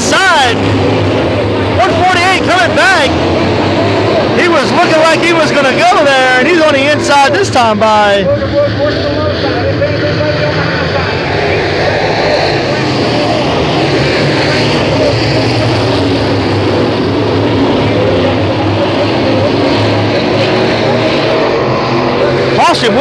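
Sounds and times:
racing car engines droning: 0:00.0 - 0:23.0.

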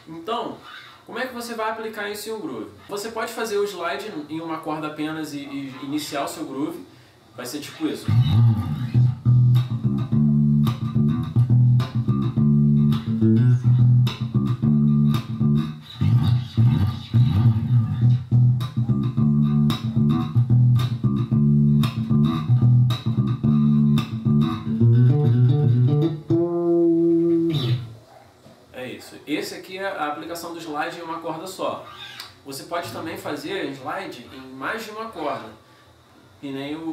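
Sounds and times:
electric bass groove: 0:08.1 - 0:28.0.

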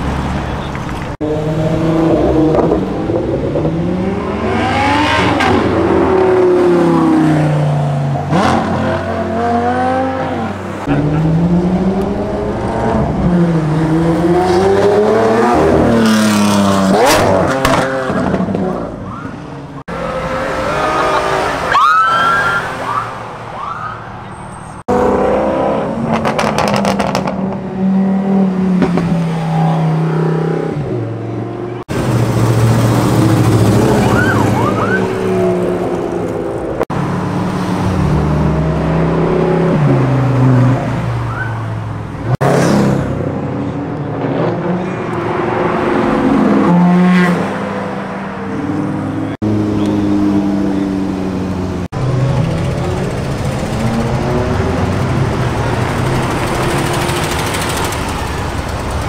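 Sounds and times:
car engines revving hard: 0:00.0 - 0:23.4, 0:24.8 - 0:59.0.

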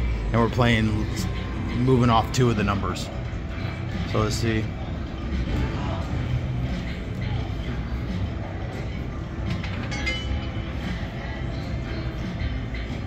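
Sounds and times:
casino background din: 0:00.0 - 0:13.0.

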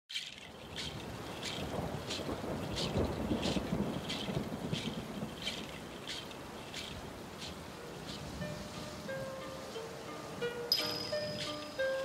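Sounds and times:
steady high ticking: 0:00.2 - 0:12.0
low thunder-like rumble: 0:01.1 - 0:08.1.

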